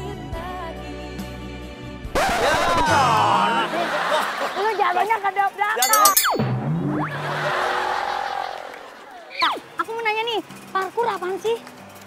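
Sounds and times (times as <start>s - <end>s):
people laughing and shouting: 2.2s - 5.3s, 7.1s - 9.6s
comedy falling pitch sweep: 5.8s - 7.5s.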